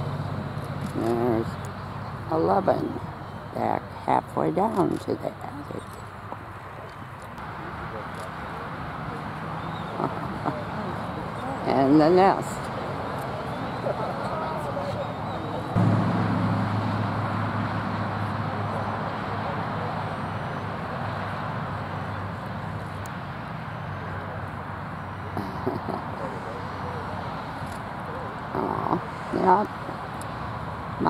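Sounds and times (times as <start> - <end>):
vehicle engine hum: 0.0 - 31.0.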